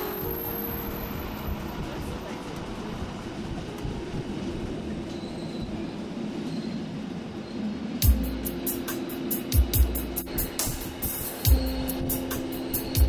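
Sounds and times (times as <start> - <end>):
train wheels rumbling on track: 0.0 - 13.0.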